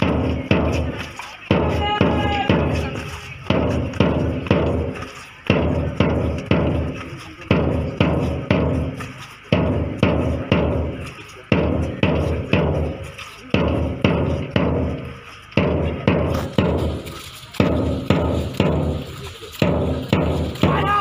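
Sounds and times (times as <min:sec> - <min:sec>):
bass drum beating march time: 0:00.0 - 0:21.0.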